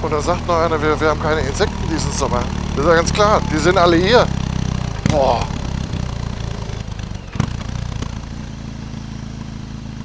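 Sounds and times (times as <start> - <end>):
motorcycle engine running: 0.0 - 10.0.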